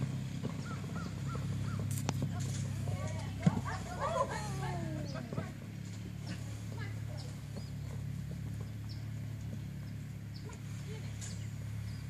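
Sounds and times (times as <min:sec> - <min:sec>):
steady low hum: 0:00.0 - 0:12.0
short bird calls: 0:00.6 - 0:02.0.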